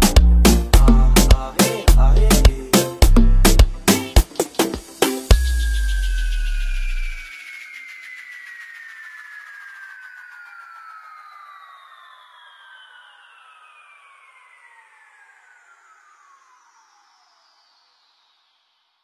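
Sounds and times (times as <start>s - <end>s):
synthesizer tones gliding downward: 0.0s - 18.6s.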